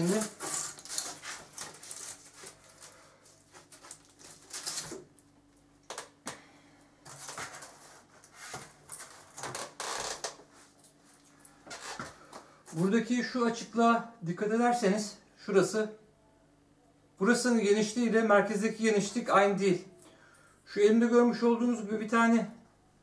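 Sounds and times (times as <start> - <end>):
plastic discs rustling: 0.0 - 5.2.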